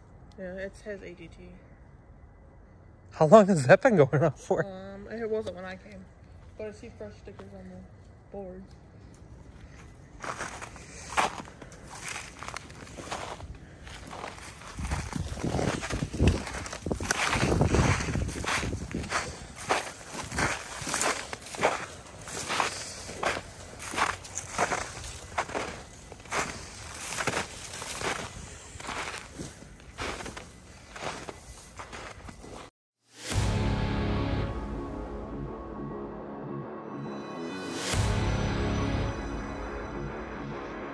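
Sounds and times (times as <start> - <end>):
footsteps on snow: 9.5 - 32.7
music: 33.1 - 40.9.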